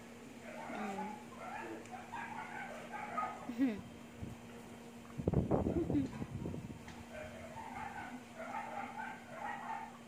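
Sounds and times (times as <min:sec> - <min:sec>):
dog whining and yipping: 0:07.2 - 0:09.9.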